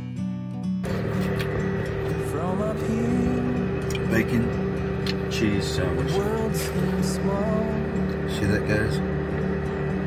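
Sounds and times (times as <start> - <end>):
steady mechanical hum: 0.8 - 10.0.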